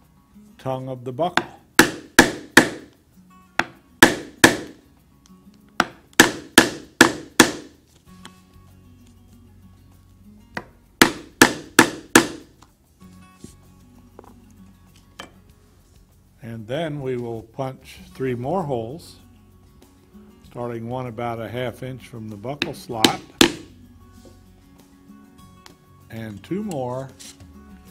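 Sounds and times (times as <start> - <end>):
mallet striking leather punch: 1.3 - 3.0, 3.6 - 4.8, 5.7 - 7.8, 10.5 - 12.6, 22.6 - 23.8.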